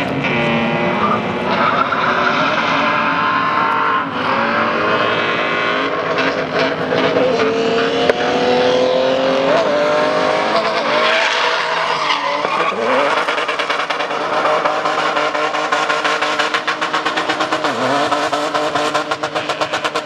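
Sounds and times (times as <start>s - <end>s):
engine at high revs: 0.0s - 20.0s
tyres spinning and skidding: 10.3s - 20.0s.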